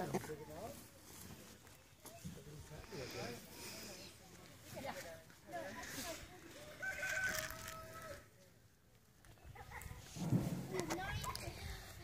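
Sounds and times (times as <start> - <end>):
rooster crowing: 6.8 - 8.2.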